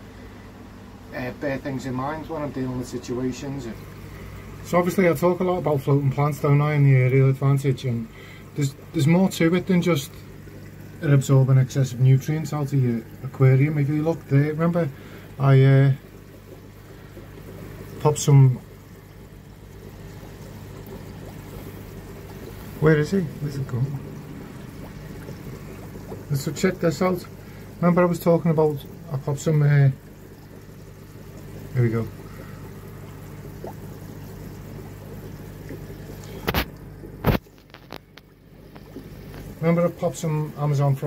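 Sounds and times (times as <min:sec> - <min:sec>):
low hum: 0:00.0 - 0:40.0
water trickling in aquarium: 0:00.0 - 0:41.0.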